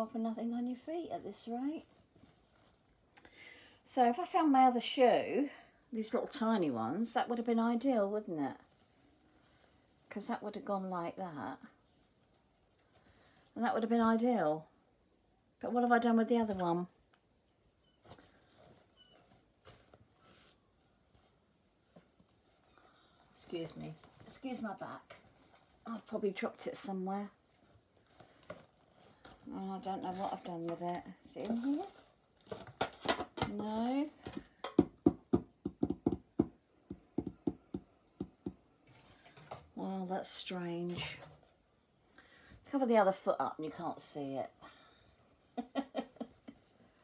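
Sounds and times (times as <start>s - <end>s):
objects knocking and clicking: 32.5s - 39.7s.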